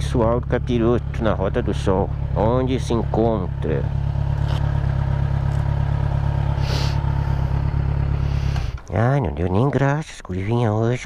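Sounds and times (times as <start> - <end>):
motorcycle engine idling: 0.0 - 9.2
short hiss: 6.6 - 7.0.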